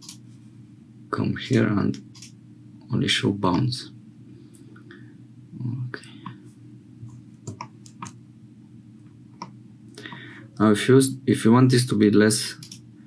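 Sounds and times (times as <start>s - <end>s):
steady low hum: 0.0s - 13.0s
computer mouse clicks: 12.6s - 12.8s.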